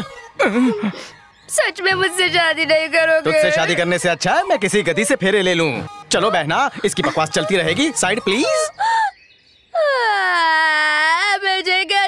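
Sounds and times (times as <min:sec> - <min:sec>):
woman wailing: 0:00.0 - 0:01.0, 0:05.9 - 0:09.1, 0:09.8 - 0:11.2.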